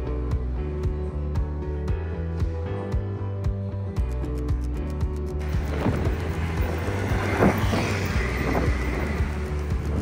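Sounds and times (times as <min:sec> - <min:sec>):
music with steady low beat: 0:00.0 - 0:10.0
street traffic noise: 0:04.0 - 0:10.0
motor vehicle passing: 0:05.4 - 0:10.0.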